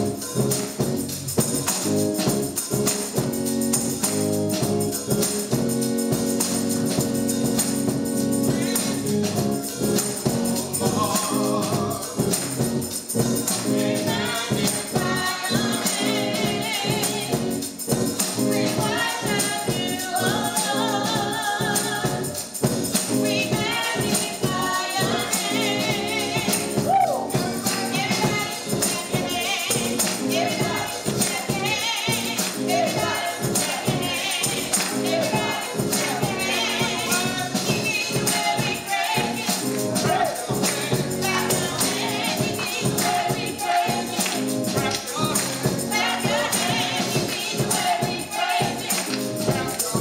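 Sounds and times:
organ chords: 0:00.0 - 0:50.0
tambourine shaken: 0:00.0 - 0:50.0
voices singing gospel: 0:00.0 - 0:50.0.

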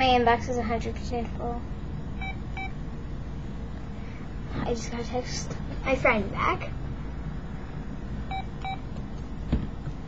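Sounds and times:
phone beeps: 0:08.3 - 0:08.8.

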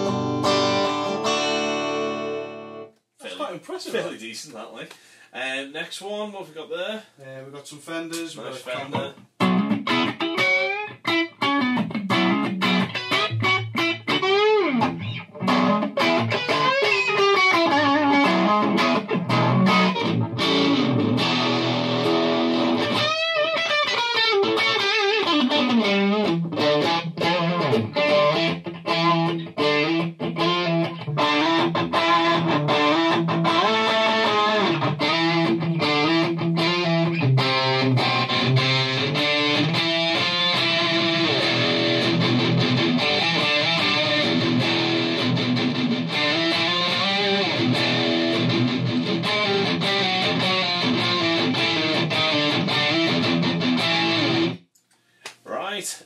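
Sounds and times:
electric guitar notes and chords: 0:00.0 - 0:02.9, 0:08.8 - 0:54.6.

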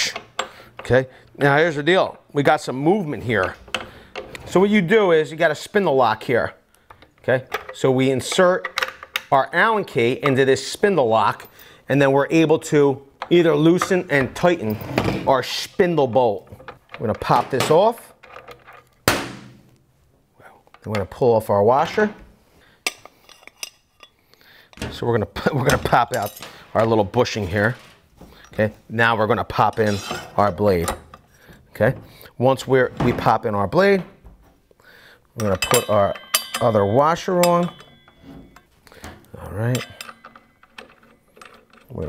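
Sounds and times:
light metallic clinks: 0:35.4 - 0:42.0.

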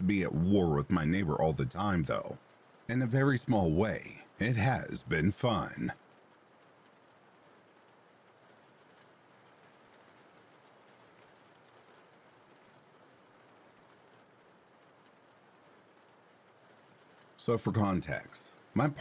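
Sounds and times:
faint steady rain: 0:00.0 - 0:19.0.

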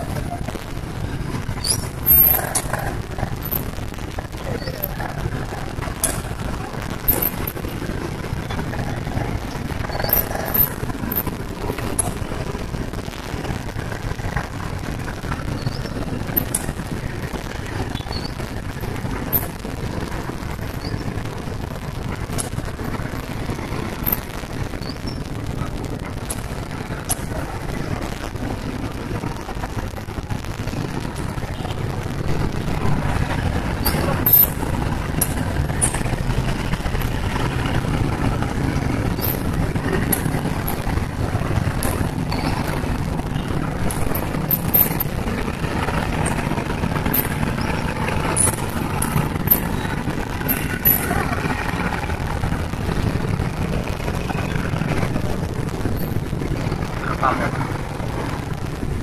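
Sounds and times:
car and motorcycle engines idling: 0:00.0 - 0:59.0.

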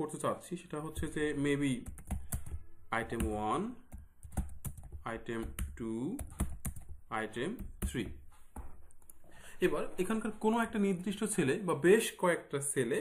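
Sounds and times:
keyboard keys clicking: 0:03.9 - 0:07.0.

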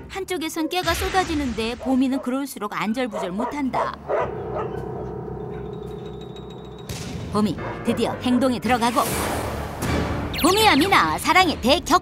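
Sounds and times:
dog yelping: 0:03.1 - 0:05.1.

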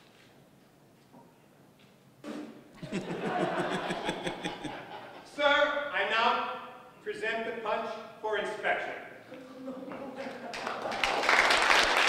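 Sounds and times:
people laughing: 0:02.8 - 0:05.8, 0:09.4 - 0:11.4.

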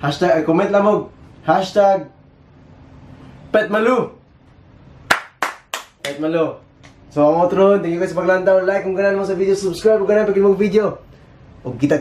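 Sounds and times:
sharp hand claps: 0:05.0 - 0:06.2.

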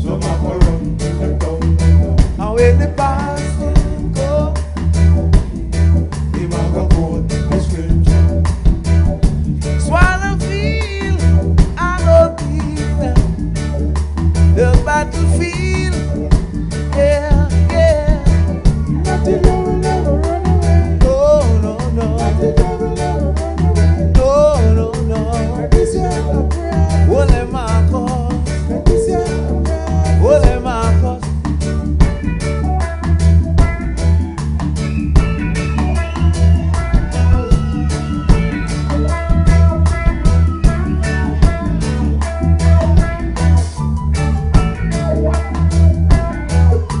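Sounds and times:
heavy bass line: 0:00.0 - 0:47.0
live reggae band playing: 0:00.0 - 0:47.0
regular drum beat: 0:00.0 - 0:47.0
vocal trio singing in harmony: 0:19.0 - 0:31.1.

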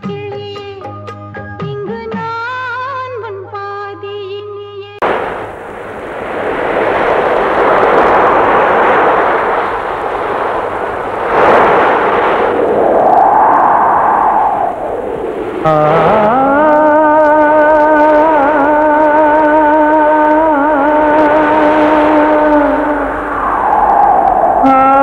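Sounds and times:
music: 0:00.0 - 0:05.0
big wave crash: 0:05.0 - 0:25.0
ocean waves breaking: 0:05.0 - 0:25.0.

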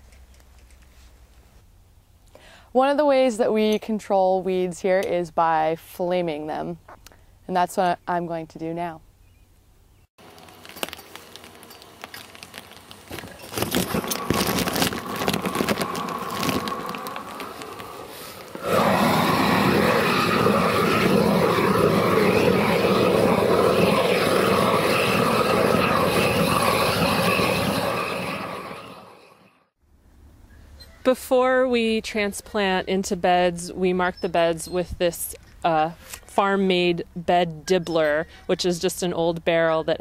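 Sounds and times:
crackling and clicking: 0:00.0 - 0:00.9, 0:10.2 - 0:27.3
propane torch rushing hiss: 0:13.0 - 0:29.2.

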